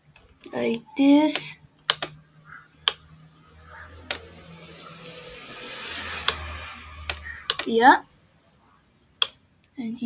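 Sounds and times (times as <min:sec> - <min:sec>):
computer mouse clicks: 0:01.3 - 0:03.0, 0:04.0 - 0:04.3, 0:06.1 - 0:07.8.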